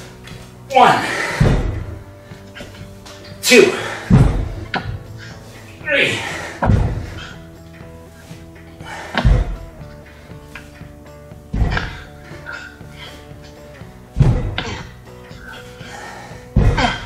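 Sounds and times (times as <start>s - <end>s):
background music: 0.0s - 17.0s
dumbbells thudding on floor: 1.2s - 2.0s, 3.8s - 5.1s, 6.5s - 7.3s, 9.1s - 9.7s, 11.5s - 12.1s, 14.1s - 14.9s, 16.5s - 17.0s.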